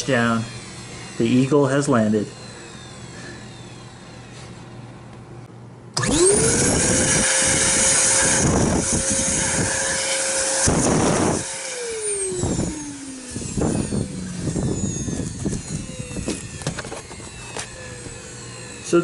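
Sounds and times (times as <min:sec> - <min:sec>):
vacuum cleaner motor whine: 0:00.0 - 0:04.9, 0:06.0 - 0:19.0
knocks of vacuum winding down: 0:06.0 - 0:19.0.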